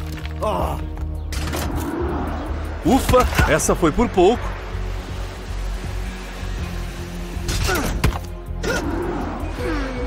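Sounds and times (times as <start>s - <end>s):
cartoon background music: 7.4s - 10.0s.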